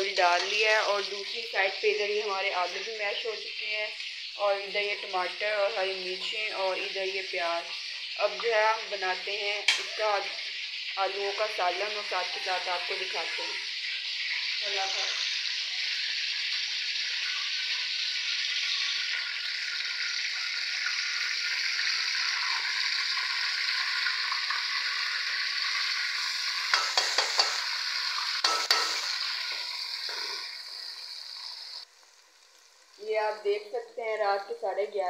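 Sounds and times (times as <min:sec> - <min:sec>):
onions sizzling in hot oil: 0:00.0 - 0:35.0
spatula scraping a pan: 0:26.7 - 0:30.5.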